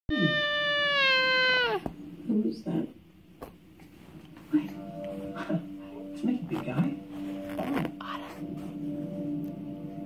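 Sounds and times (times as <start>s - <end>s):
baby squealing: 0.1s - 1.9s.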